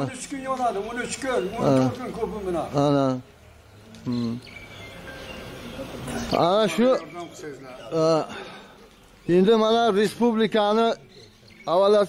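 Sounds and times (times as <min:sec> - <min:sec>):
man speaking: 0:00.0 - 0:03.3, 0:06.3 - 0:08.6
quiet outdoor background: 0:00.0 - 0:12.0.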